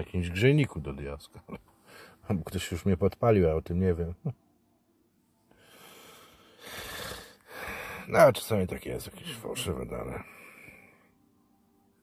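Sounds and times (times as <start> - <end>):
man breathing close to microphone: 1.8 - 2.2, 5.5 - 8.1, 10.2 - 11.2.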